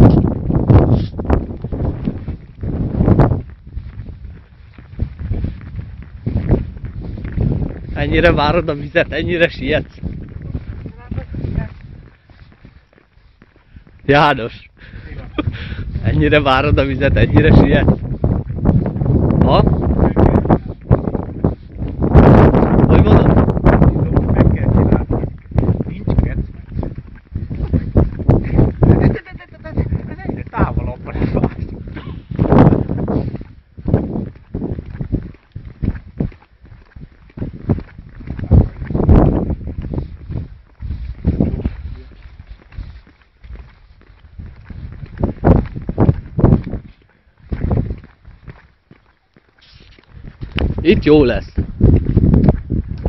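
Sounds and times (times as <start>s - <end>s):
heavy footsteps: 0.0s - 53.0s
wind buffeting microphone: 0.0s - 53.0s.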